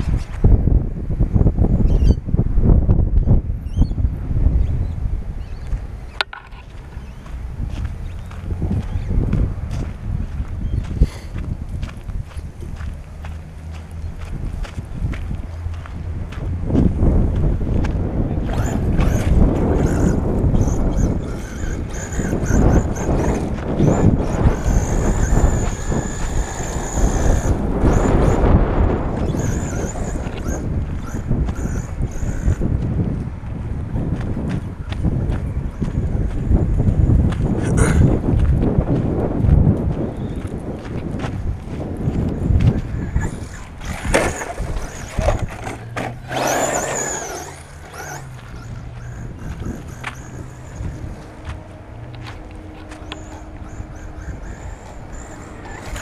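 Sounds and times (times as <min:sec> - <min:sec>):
high motor whine: 0:00.0 - 0:39.3, 0:40.0 - 0:56.0
wind rumble on microphone: 0:00.0 - 0:56.0.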